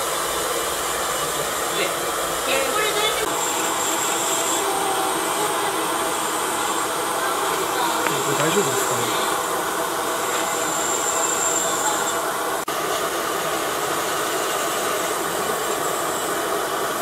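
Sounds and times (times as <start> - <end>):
steady mechanical whirring: 0.0 - 17.0.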